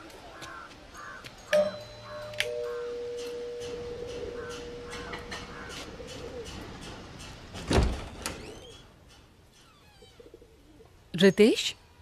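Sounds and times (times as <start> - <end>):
birds calling: 0.0 - 7.5
long held note: 1.6 - 5.3.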